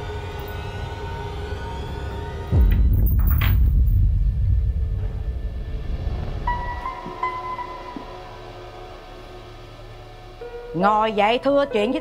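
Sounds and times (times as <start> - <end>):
low rumbling hit: 2.5 - 6.6.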